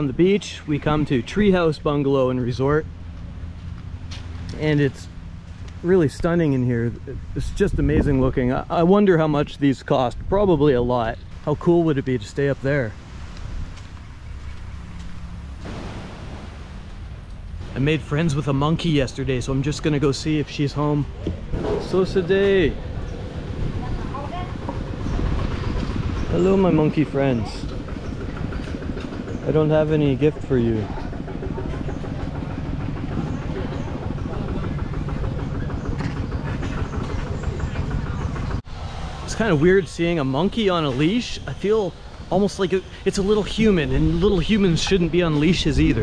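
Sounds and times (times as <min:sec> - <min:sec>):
wind buffeting microphone: 0:06.0 - 0:46.0
motor chugging: 0:14.5 - 0:46.0.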